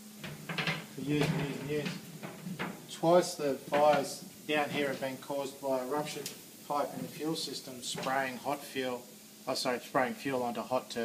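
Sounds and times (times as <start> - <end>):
man talking: 1.0 - 2.0, 2.9 - 11.0.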